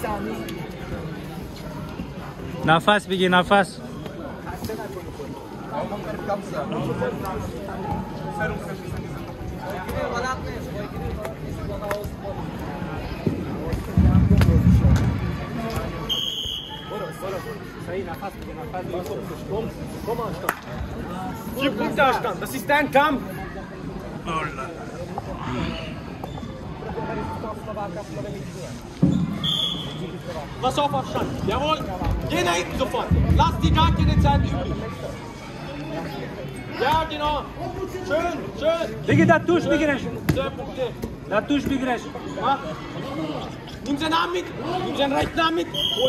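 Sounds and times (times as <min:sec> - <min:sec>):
people calling in a large hall: 0:29.4 - 0:30.4, 0:44.9 - 0:46.0.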